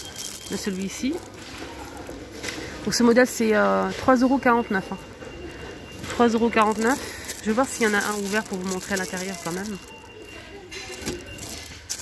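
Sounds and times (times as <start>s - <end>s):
cellophane crinkle: 0.0s - 4.0s, 4.9s - 12.0s.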